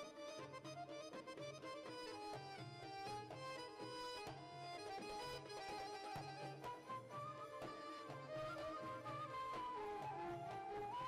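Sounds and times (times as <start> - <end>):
accordion: 0.0 - 9.1
violin: 0.0 - 11.0.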